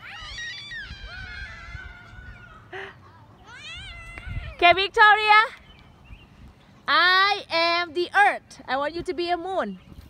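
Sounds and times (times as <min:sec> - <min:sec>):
children calling out: 0:00.0 - 0:04.6
wind rumble on microphone: 0:00.2 - 0:02.6, 0:03.7 - 0:06.7, 0:08.8 - 0:10.0.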